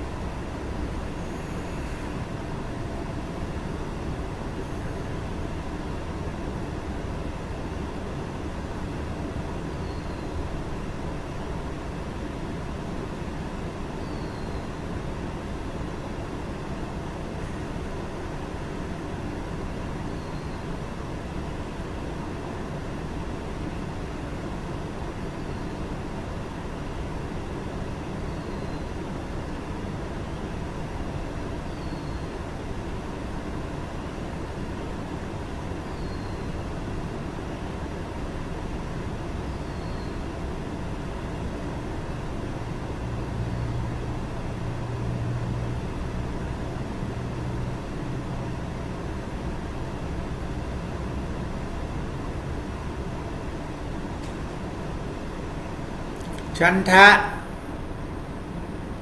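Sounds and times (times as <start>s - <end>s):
background rumble and hiss: 0.0s - 59.0s.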